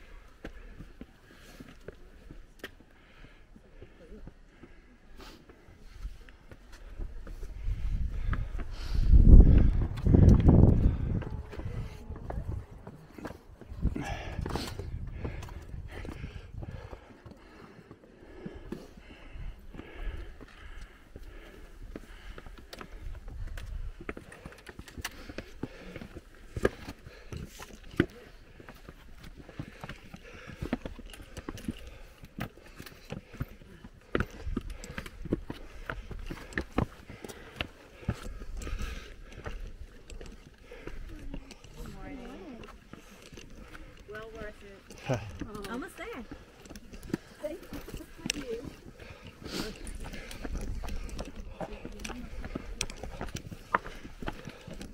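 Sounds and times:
footsteps on rock: 0:06.0 - 0:54.9
faint voices: 0:09.4 - 0:14.5.

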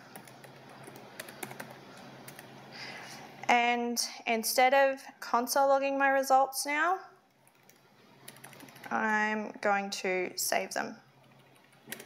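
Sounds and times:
computer keyboard typing: 0:00.1 - 0:02.5, 0:07.4 - 0:09.0, 0:11.3 - 0:12.0.

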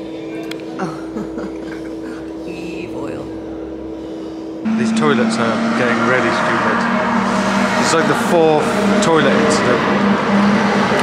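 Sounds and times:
steady low hum: 0:00.0 - 0:11.0
muffled road traffic: 0:02.3 - 0:11.0
lorry passing: 0:04.6 - 0:11.0.

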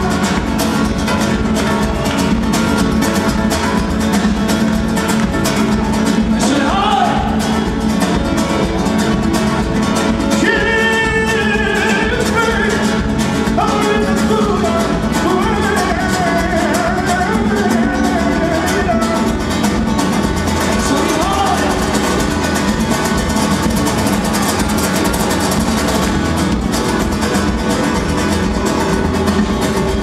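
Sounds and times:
acoustic guitars strummed: 0:00.0 - 0:30.0
live band playing: 0:00.0 - 0:30.0.

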